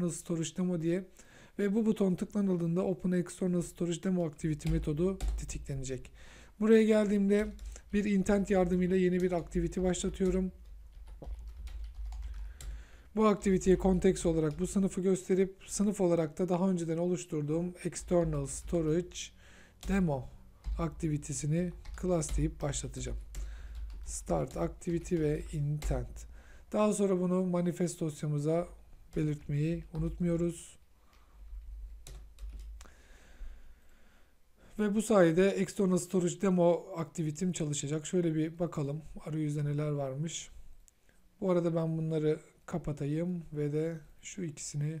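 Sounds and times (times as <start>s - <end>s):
computer keyboard typing: 4.5s - 5.7s, 7.2s - 12.8s, 13.4s - 14.9s, 17.9s - 19.2s, 19.8s - 26.3s, 29.1s - 30.4s, 31.9s - 32.9s.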